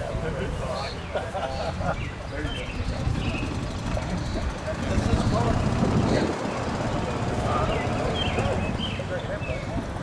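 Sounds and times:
car engine rumbling: 0:02.8 - 0:10.0.

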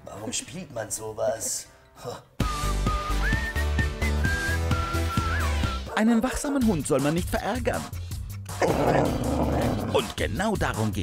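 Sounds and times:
whistled melody: 0:02.4 - 0:06.0.

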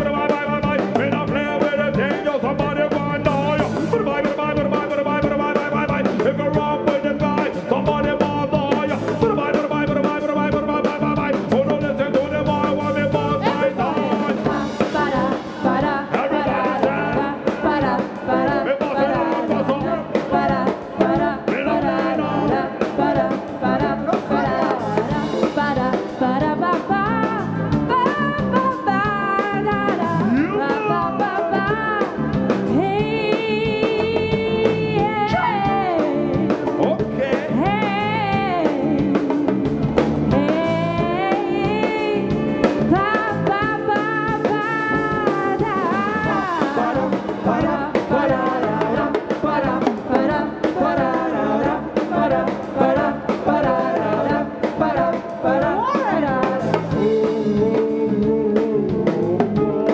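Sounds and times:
drums: 0:00.0 - 0:59.9
keyboard: 0:00.0 - 0:59.9
people singing together: 0:00.0 - 0:59.9.

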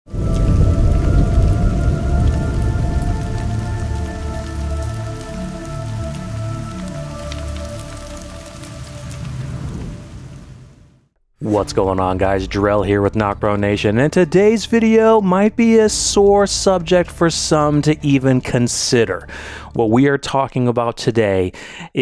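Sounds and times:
deep rumble: 0:00.1 - 0:10.6
crackling rain-like hiss: 0:00.1 - 0:19.8.

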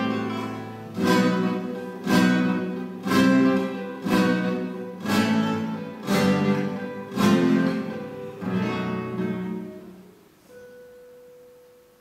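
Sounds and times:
guitar harmonic note: 0:00.0 - 0:11.8.

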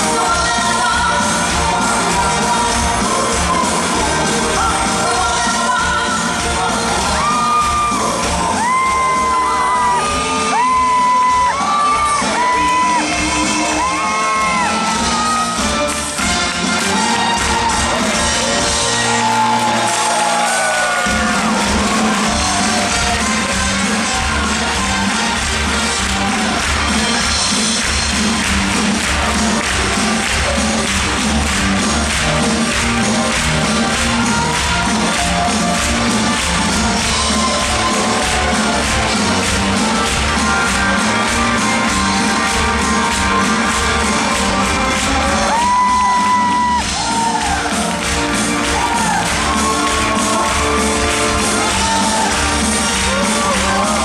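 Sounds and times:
live dance band with singer: 0:00.0 - 0:54.0
spectators shouting and cheering: 0:00.0 - 0:54.0.

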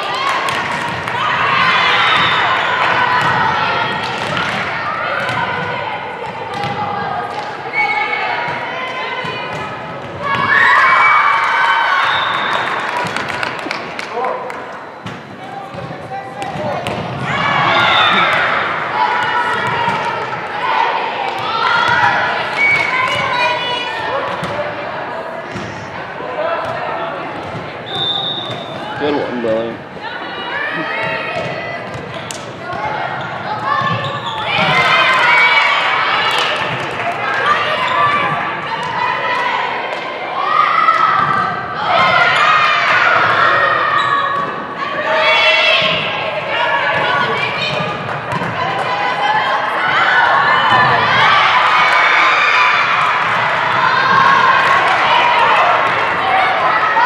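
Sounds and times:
volleyball hits: 0:00.4 - 0:07.6, 0:12.3 - 0:20.4, 0:46.9 - 0:49.0
voices calling and shouting: 0:14.2 - 0:57.0.

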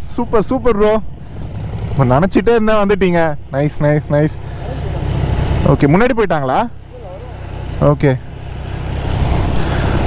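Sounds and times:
motorcycle engine idling: 0:00.1 - 0:10.0.

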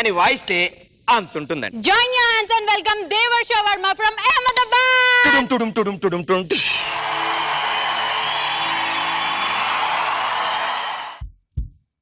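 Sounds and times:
audience applauding: 0:06.8 - 0:11.2.

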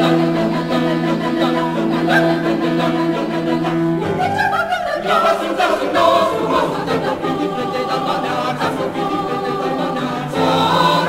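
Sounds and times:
mixed choir singing: 0:00.0 - 0:11.0.

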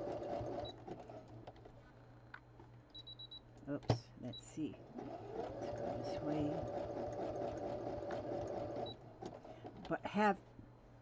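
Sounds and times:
sewing machine stitching: 0:00.0 - 0:01.5, 0:04.8 - 0:09.5.

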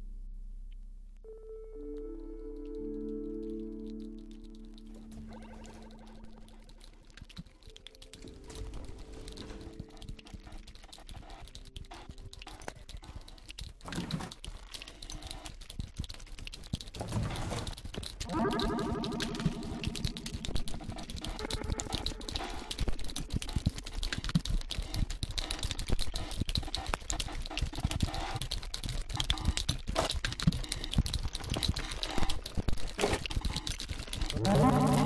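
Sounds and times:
experimental electronic music: 0:01.3 - 0:07.3, 0:18.2 - 0:23.8
rapid irregular clicks: 0:01.9 - 0:35.0.

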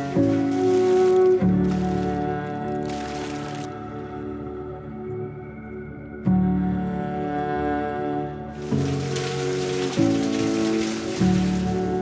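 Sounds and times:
water splashing in a bucket: 0:00.0 - 0:03.8, 0:08.6 - 0:12.0
soft ambient music: 0:00.0 - 0:12.0.

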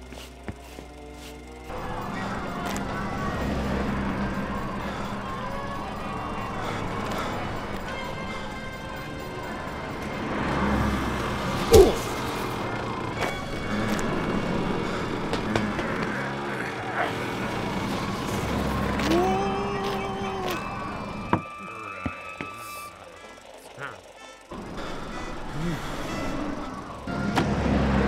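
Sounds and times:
city street traffic: 0:00.0 - 0:28.0
film music: 0:00.0 - 0:28.0.

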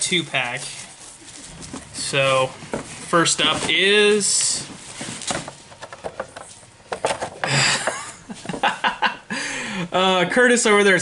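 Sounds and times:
box rustle: 0:01.0 - 0:07.4.

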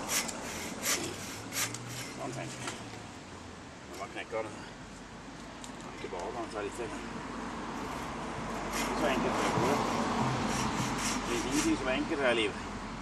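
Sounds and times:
hand saw rasping through wood: 0:00.0 - 0:02.3, 0:08.6 - 0:12.0.

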